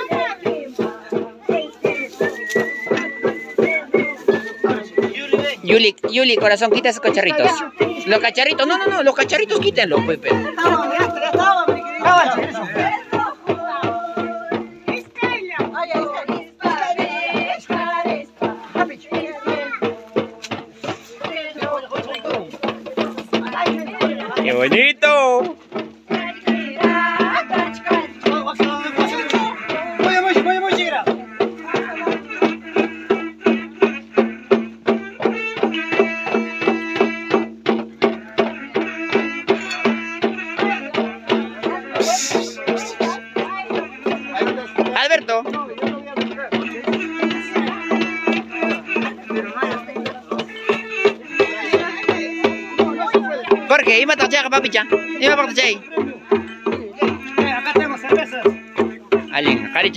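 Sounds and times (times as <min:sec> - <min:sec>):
hand drums beaten: 0:00.0 - 0:59.9
voices singing: 0:00.0 - 0:59.9.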